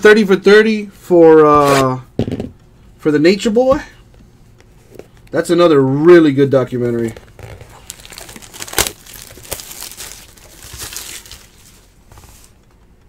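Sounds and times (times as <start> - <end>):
plastic shrink wrap crinkling and tearing: 6.6 - 12.6.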